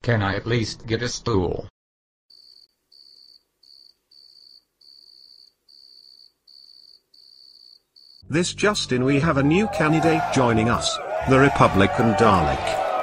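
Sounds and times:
cricket chirping: 0:02.3 - 0:08.2.

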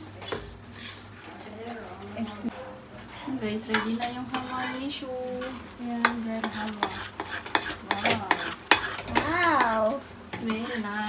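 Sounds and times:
steel ladle scraping metal pan: 0:03.0 - 0:11.0.

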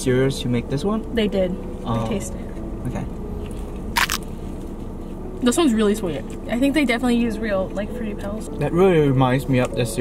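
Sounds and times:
steady low hum: 0:00.0 - 0:10.0
crunchy bite: 0:03.9 - 0:04.3.

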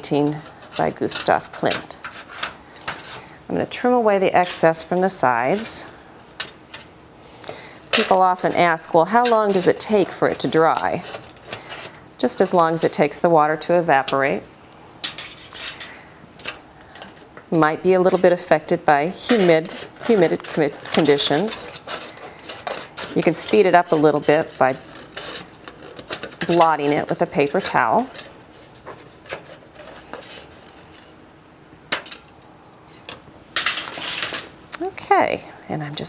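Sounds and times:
scissors cutting metal foil: 0:00.0 - 0:03.0, 0:07.9 - 0:11.6, 0:17.8 - 0:28.3
foil crinkling: 0:18.0 - 0:31.1.

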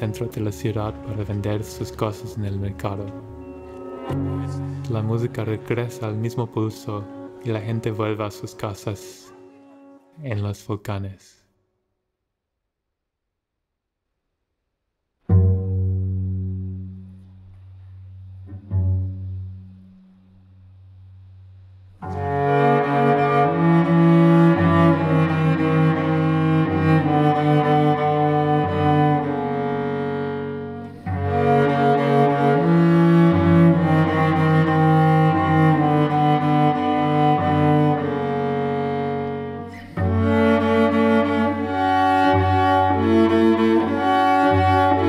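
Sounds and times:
bowed cello notes: 0:00.0 - 0:10.6, 0:15.2 - 0:45.0.

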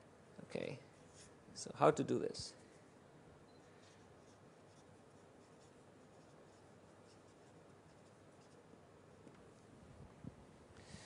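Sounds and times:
faint room hiss: 0:00.0 - 0:11.0
writing scratches on a board: 0:03.8 - 0:08.7.

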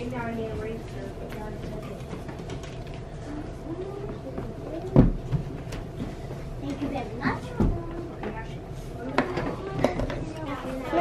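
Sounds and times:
children chattering: 0:00.0 - 0:05.6, 0:06.6 - 0:11.0.

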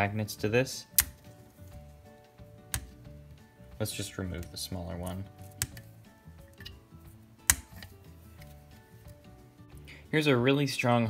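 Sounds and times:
faint background music: 0:00.0 - 0:11.0
magnets snapping against metal: 0:00.9 - 0:01.8, 0:02.7 - 0:03.0, 0:05.3 - 0:06.8, 0:07.4 - 0:09.2.

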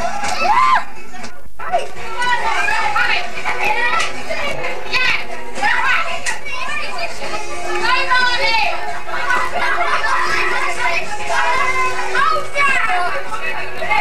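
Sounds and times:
young people chattering and laughing: 0:00.0 - 0:14.0.

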